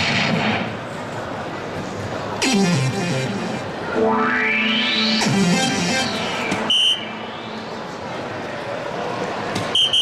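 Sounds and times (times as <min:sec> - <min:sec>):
synthesized sweep: 0:02.4 - 0:08.1
short high beep: 0:04.1 - 0:07.6.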